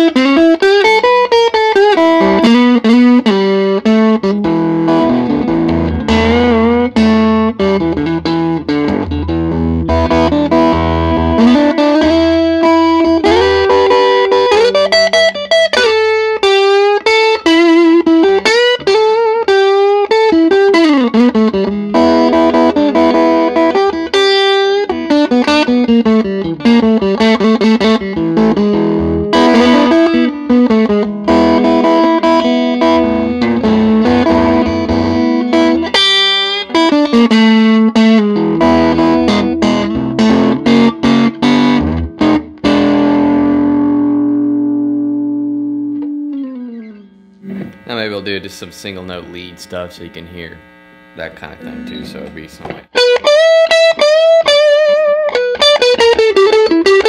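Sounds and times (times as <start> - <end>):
electric blues guitar lead: 0.0 - 57.0.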